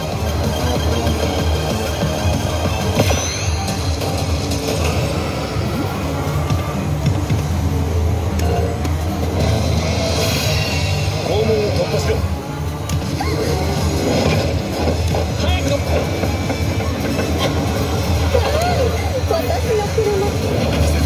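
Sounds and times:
game center hum and clatter: 0:00.0 - 0:21.0
slot machine music and effects: 0:00.0 - 0:21.0.

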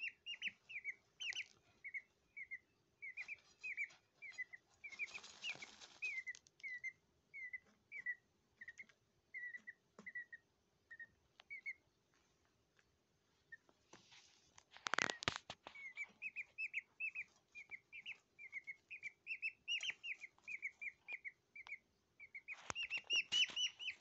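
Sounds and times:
chick peeping: 0:00.0 - 0:12.1, 0:13.4 - 0:14.0, 0:14.9 - 0:24.0
scratchy rustling in soil: 0:03.2 - 0:06.5, 0:13.7 - 0:18.8.

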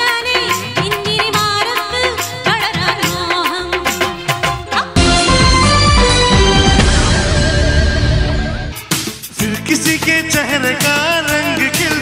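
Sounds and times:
woman singing into a microphone: 0:00.0 - 0:05.0
film song backing music: 0:01.8 - 0:12.0.

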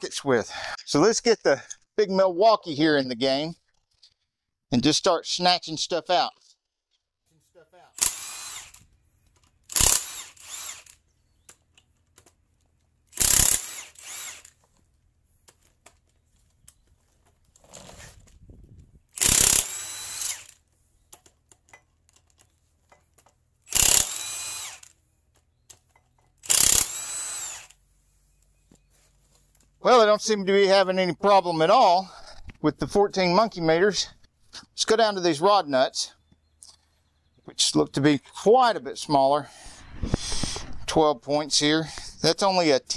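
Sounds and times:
impact wrench hammering bolts: 0:13.1 - 0:14.6, 0:22.9 - 0:25.0, 0:25.7 - 0:27.5.

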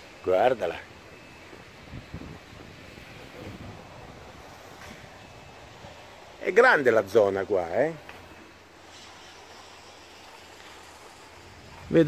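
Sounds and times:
faint outdoor background noise: 0:00.0 - 0:12.0
wind on microphone: 0:01.4 - 0:06.1, 0:10.8 - 0:12.0.

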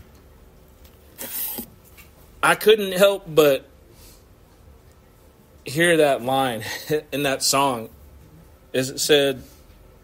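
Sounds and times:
faint steady hum: 0:00.0 - 0:10.0
short breath: 0:03.9 - 0:04.3.

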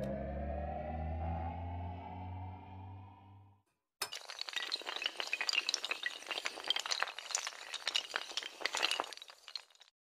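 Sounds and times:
held low note: 0:00.0 - 0:03.5.

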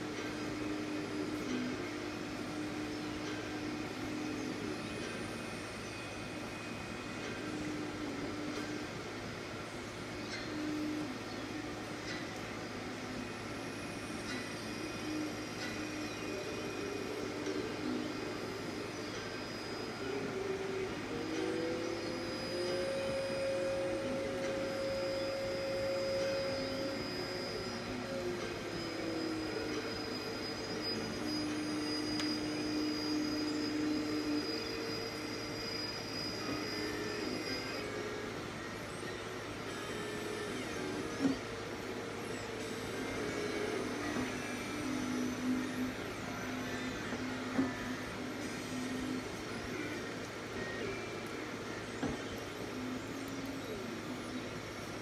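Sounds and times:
steady noisy hum: 0:00.0 - 0:55.0.

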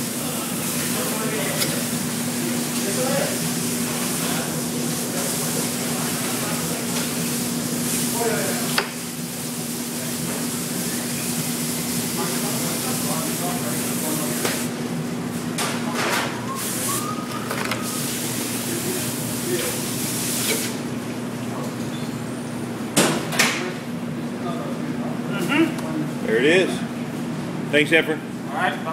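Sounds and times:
room noise hiss and hum: 0:00.0 - 0:28.9.

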